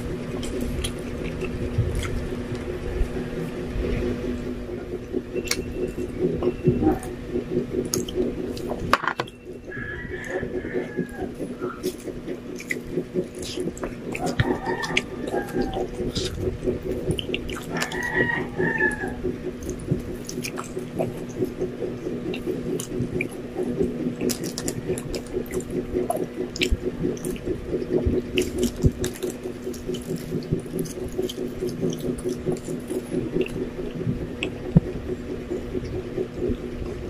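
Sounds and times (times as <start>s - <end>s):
steady low hum: 0.0s - 37.0s
wet chewing mouth sounds: 0.0s - 37.0s.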